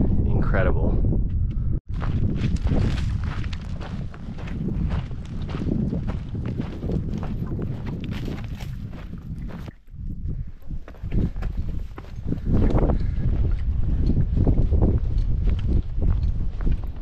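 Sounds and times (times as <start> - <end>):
wind rumble on microphone: 0.0 - 17.0
footsteps crunching on gravel: 1.9 - 9.8.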